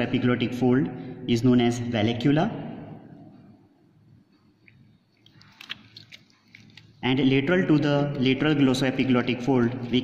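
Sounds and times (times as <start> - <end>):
forceps handling specimen: 4.6 - 7.0.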